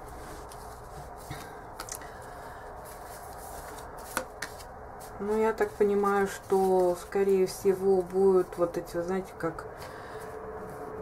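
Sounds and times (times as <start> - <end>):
cards clicking on cloth: 2.9 - 5.2.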